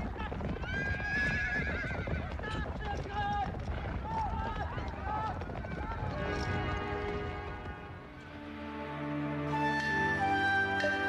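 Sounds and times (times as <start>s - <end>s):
horses neighing: 0.0s - 2.5s
hooves clattering: 0.0s - 8.4s.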